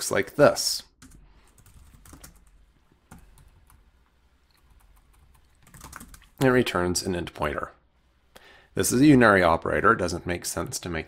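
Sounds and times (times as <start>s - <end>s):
typing on computer keyboard: 1.0s - 3.8s, 4.6s - 6.4s.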